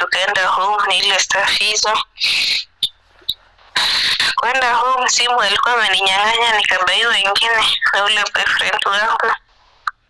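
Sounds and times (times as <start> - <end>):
person speaking: 0.0 - 2.6, 3.2 - 9.4.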